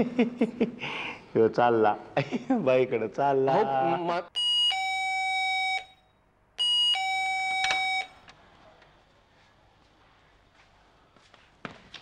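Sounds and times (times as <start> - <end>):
two-tone doorbell chime: 6.6 - 8.2.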